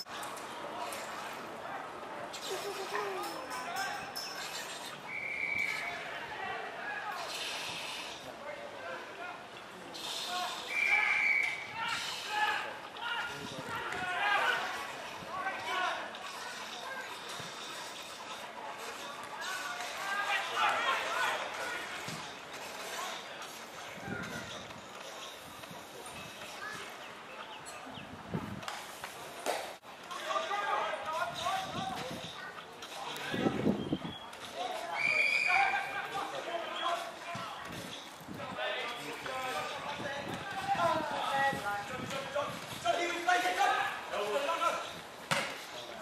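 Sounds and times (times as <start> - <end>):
players and spectators calling out: 1.8 - 16.8, 18.8 - 23.4, 30.0 - 37.6
whistle blast: 5.1 - 5.9, 10.6 - 11.7, 34.9 - 35.7.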